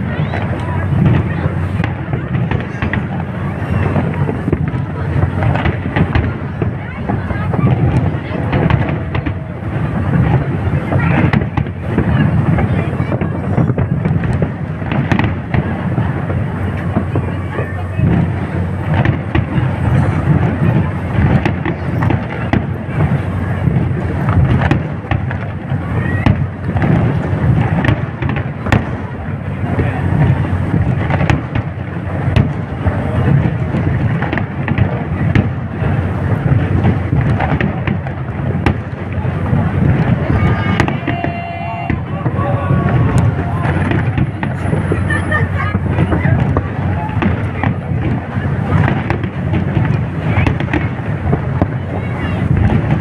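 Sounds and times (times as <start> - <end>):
fireworks bangs: 0.0 - 53.0
low rumble of explosions: 0.0 - 53.0.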